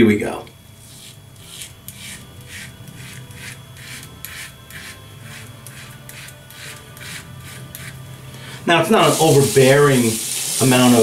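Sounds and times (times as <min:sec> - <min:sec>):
razor scraping stubble: 0:00.8 - 0:09.4.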